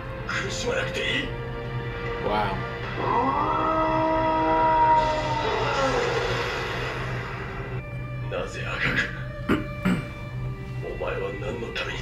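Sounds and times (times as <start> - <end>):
long drawn-out cry or roar: 2.8 - 7.0.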